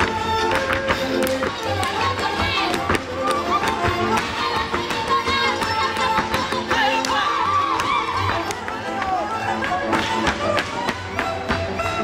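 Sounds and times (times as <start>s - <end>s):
folk dance fiddle music: 0.0s - 12.0s.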